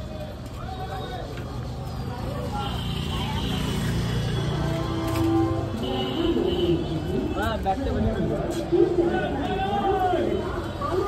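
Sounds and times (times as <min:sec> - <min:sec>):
street voices: 0:00.0 - 0:11.0.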